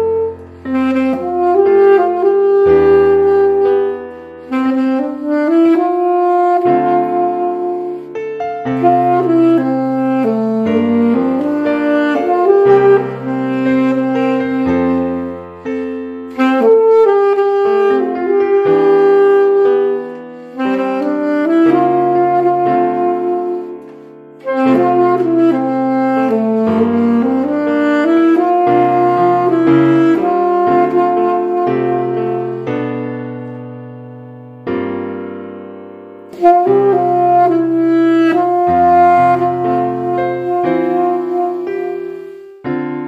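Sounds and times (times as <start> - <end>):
alto saxophone melody: 0.0 - 43.0
piano accompaniment: 0.0 - 43.0.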